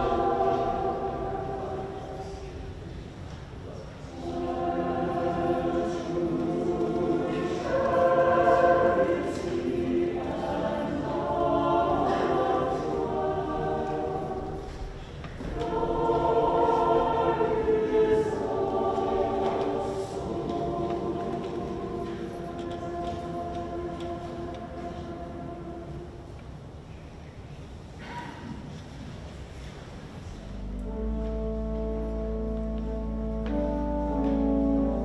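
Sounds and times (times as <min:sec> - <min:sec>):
choir singing: 0:00.0 - 0:26.8.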